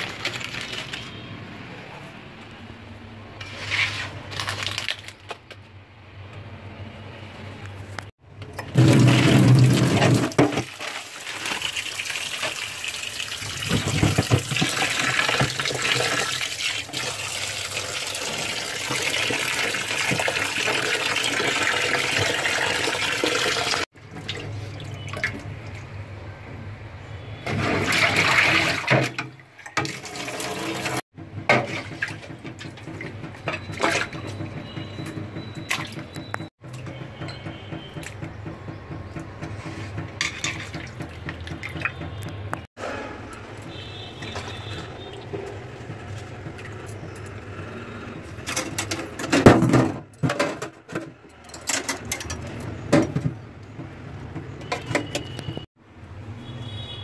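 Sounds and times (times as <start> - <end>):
splashing water: 0.0 - 1.3, 40.2 - 42.7.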